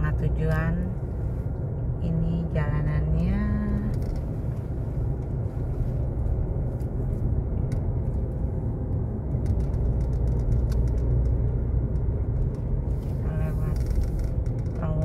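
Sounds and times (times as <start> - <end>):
tyres and engine rumble in car: 0.0 - 15.0.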